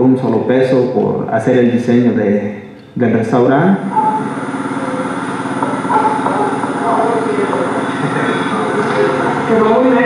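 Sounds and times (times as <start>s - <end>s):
loudspeaker hum: 0.0s - 10.0s
faint indistinct voices: 3.9s - 10.0s.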